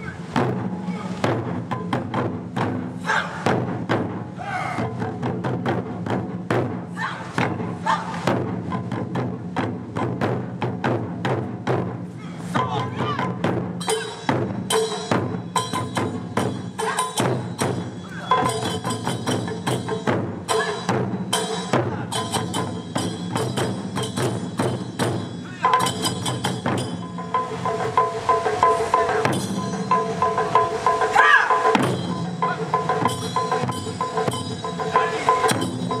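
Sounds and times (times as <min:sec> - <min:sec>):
taiko drums fast rhythm: 0:00.0 - 0:36.0.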